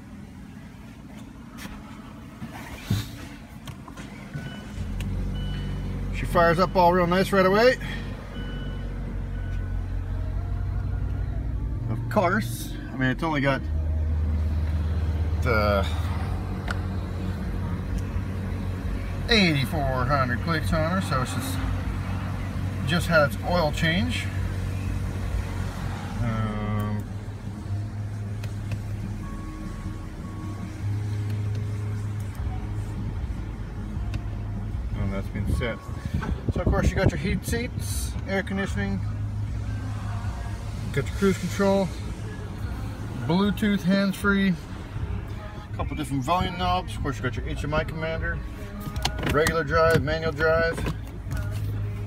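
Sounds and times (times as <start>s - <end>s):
car engine idling: 0.0s - 52.0s.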